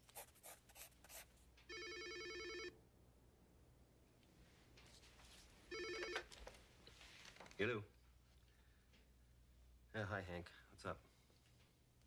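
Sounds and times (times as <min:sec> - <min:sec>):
landline telephone ringing: 0:01.7 - 0:02.8, 0:05.7 - 0:06.3.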